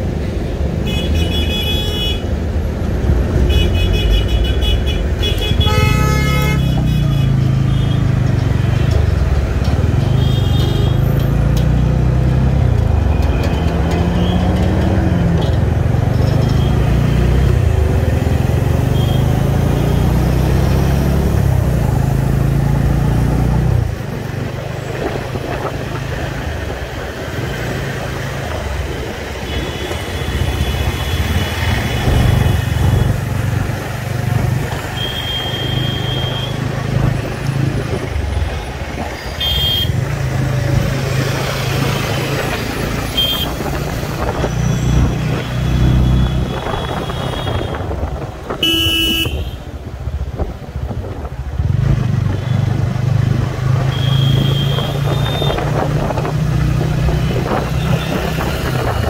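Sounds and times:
vehicle horns honking: 0:03.5 - 0:08.0, 0:35.0 - 0:36.6, 0:39.3 - 0:40.0, 0:43.0 - 0:43.7, 0:46.0 - 0:47.9, 0:48.5 - 0:49.6, 0:53.8 - 0:55.7.

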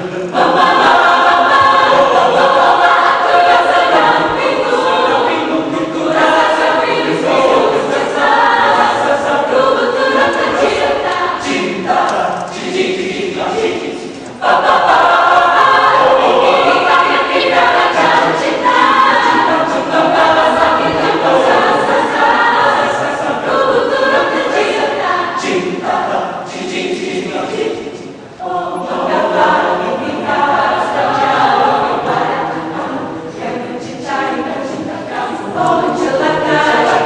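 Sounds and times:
mixed choir singing: 0:00.0 - 0:37.0.

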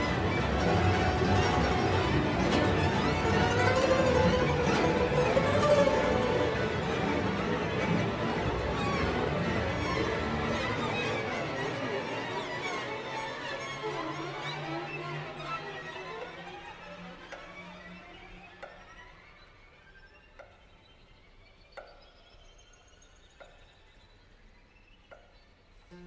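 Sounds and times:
zheng and string orchestra: 0:00.0 - 0:19.2.

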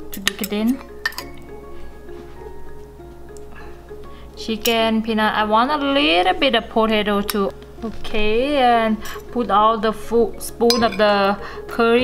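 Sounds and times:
background music: 0:00.0 - 0:12.0
cutlery clinking on ceramic bowl: 0:00.2 - 0:01.4, 0:10.7 - 0:11.3.

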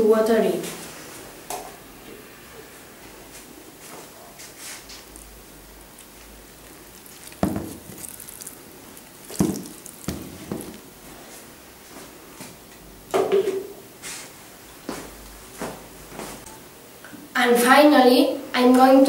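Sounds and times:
water dripping and splashing: 0:04.9 - 0:11.0
knocks and bumps: 0:07.3 - 0:08.5, 0:09.3 - 0:10.8.

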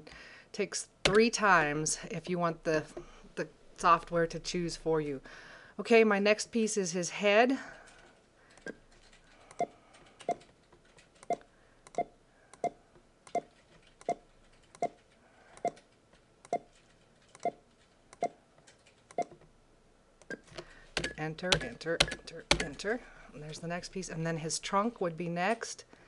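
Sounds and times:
computer mouse clicking: 0:07.9 - 0:19.4.

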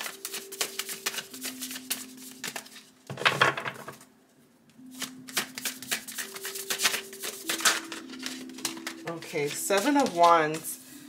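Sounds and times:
cards being shuffled: 0:00.0 - 0:02.9, 0:04.9 - 0:10.7.

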